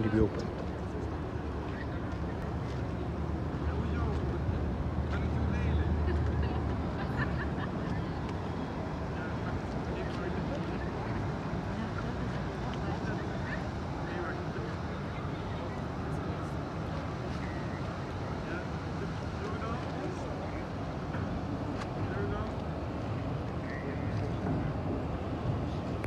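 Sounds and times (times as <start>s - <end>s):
faint voices: 0.0s - 26.0s.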